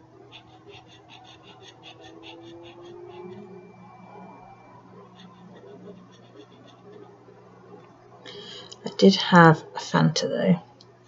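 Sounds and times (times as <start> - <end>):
faint electrical hum: 0.0 - 11.0
marker scratching on paper: 0.3 - 3.4, 5.0 - 7.1.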